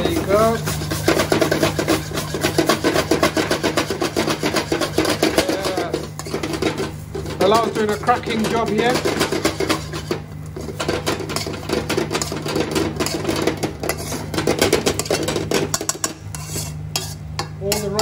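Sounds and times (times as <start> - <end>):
metal spoon scraping a pan: 0.0 - 18.0
steady low hum: 0.0 - 18.0.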